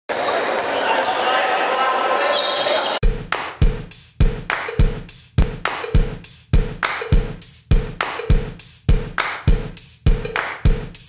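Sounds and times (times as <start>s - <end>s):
sneaker squeaks: 0.1s - 3.0s
crowd chatter in a large hall: 0.2s - 3.0s
music with bass-drum beat: 3.0s - 11.0s.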